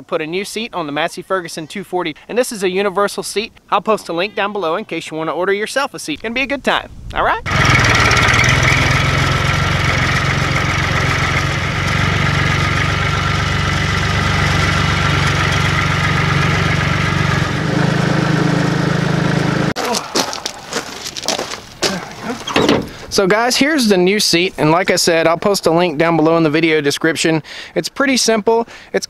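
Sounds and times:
tractor engine running: 7.5s - 23.2s.

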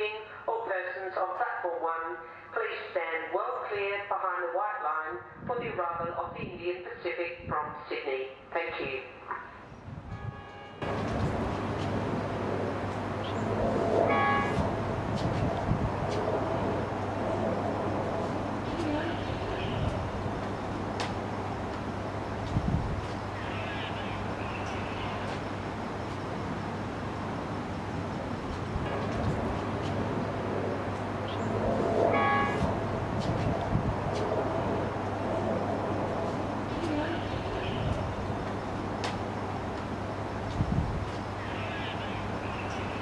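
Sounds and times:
train horn note: 10.1s - 11.8s, 13.2s - 15.4s, 31.2s - 33.5s
diesel locomotive horn blast: 10.1s - 20.1s, 28.9s - 35.0s
steady low rumble: 10.8s - 41.5s.

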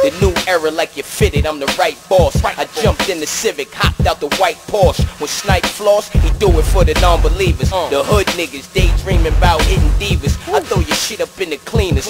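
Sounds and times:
rapping over a beat: 0.0s - 12.0s
bass drum hits: 6.2s - 7.8s, 8.8s - 10.2s.

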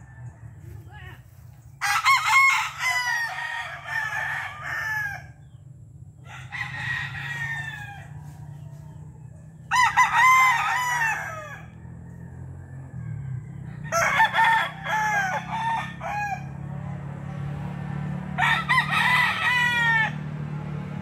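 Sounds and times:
roosters crowing: 0.0s - 21.0s.

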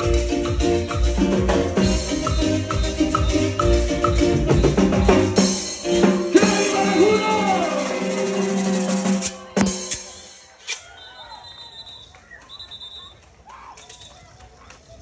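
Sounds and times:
live band on keyboard and drum: 0.0s - 10.8s
faint crowd voices: 1.8s - 15.0s.

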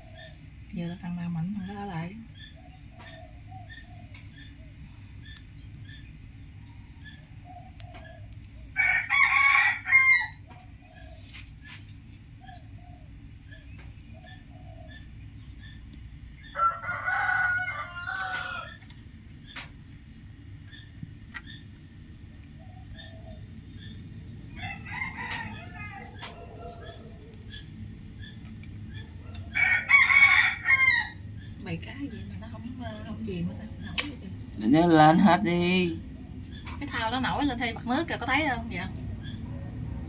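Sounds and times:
steady low rumble: 35.2s - 40.0s.

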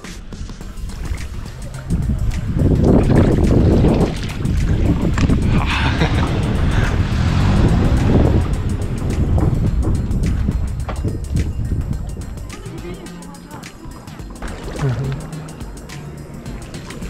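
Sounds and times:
music: 0.0s - 17.0s
wind rumble on microphone: 0.4s - 12.8s
paddle strokes splashing water: 0.6s - 17.0s.

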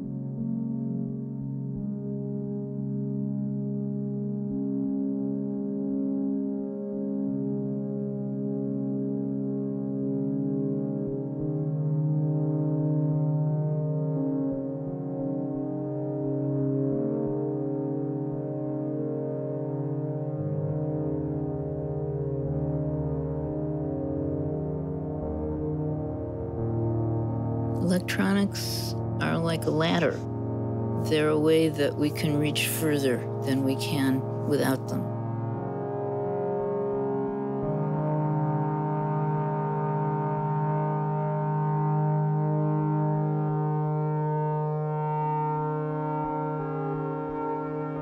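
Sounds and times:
electronic drone: 10.4s - 48.0s.

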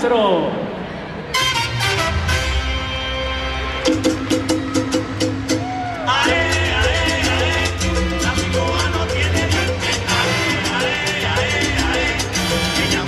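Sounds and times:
salsa music: 1.3s - 13.0s.

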